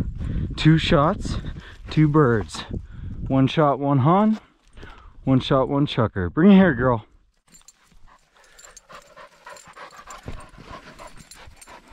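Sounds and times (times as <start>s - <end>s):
dog panting: 7.6s - 11.9s.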